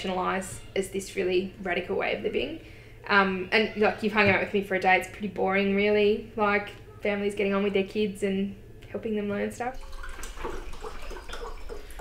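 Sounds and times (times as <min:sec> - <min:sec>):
liquid being poured: 0:09.7 - 0:12.0.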